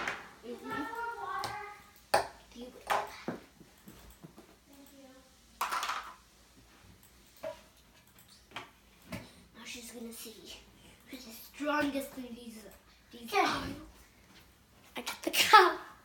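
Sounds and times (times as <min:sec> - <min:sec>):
children's voices: 0:00.0 - 0:03.4, 0:09.5 - 0:14.0, 0:15.0 - 0:16.0.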